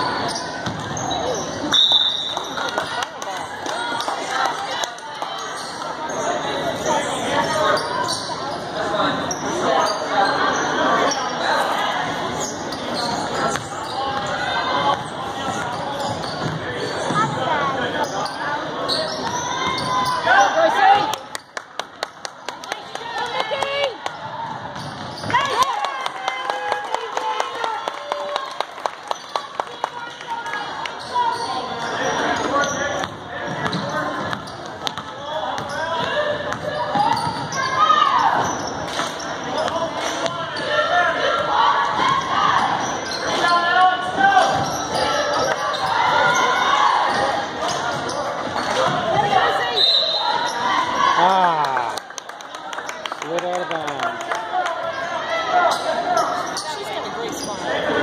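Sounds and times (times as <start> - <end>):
chatter and calls of people: 0.0 - 58.0.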